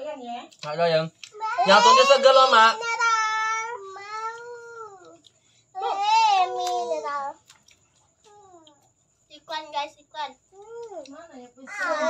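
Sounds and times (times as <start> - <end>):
child making high-pitched sounds: 1.3 - 2.2, 2.8 - 7.4, 8.2 - 8.9, 11.7 - 12.0.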